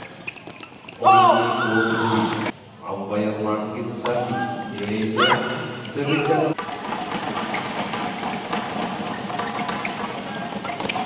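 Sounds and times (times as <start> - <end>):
crowd hubbub in sports hall: 0.0 - 11.0.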